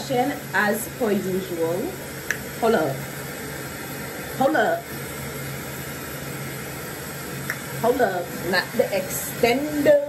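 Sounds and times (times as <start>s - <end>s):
low even hum: 0.0s - 10.0s
steady background hiss: 0.0s - 10.0s.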